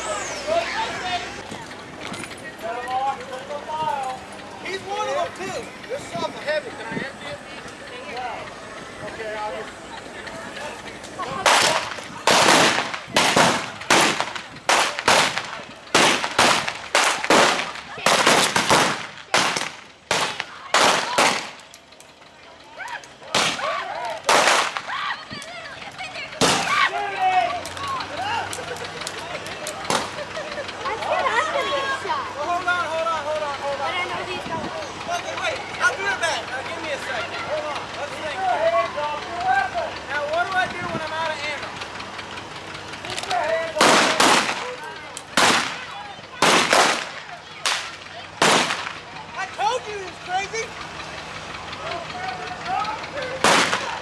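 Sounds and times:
voices shouting: 0:00.0 - 0:54.0.

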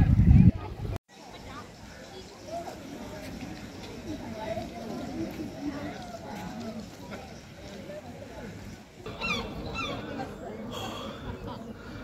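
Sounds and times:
faint background murmur: 0:00.0 - 0:12.0
bird calling with falling cries: 0:09.1 - 0:10.3.

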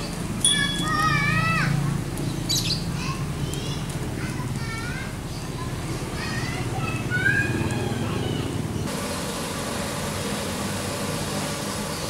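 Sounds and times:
high chirp: 0:00.4 - 0:01.6
child calling: 0:00.5 - 0:02.0.

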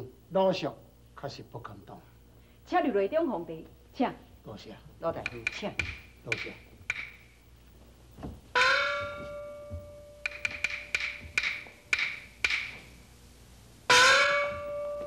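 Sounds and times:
sharp wooden clicks: 0:05.2 - 0:07.4, 0:10.3 - 0:13.0
small gong ringing: 0:08.6 - 0:11.7, 0:13.9 - 0:15.0.

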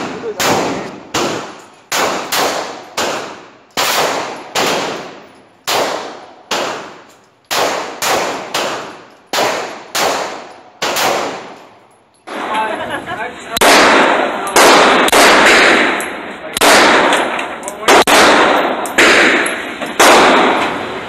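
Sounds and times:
pistol shots with echo: 0:00.0 - 0:12.5, 0:13.6 - 0:20.9.

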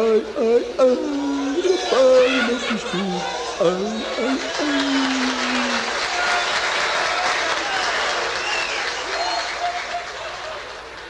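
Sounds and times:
voices calling out: 0:00.0 - 0:10.8
audience applauding: 0:01.2 - 0:11.0.

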